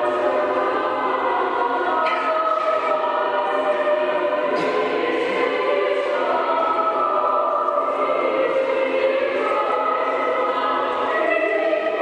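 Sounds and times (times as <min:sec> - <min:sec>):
choir singing held chords: 0:00.0 - 0:12.0.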